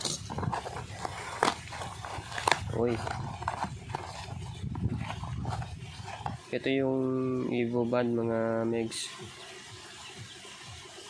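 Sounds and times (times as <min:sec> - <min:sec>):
cardboard box tearing and rustling: 0:00.0 - 0:06.5.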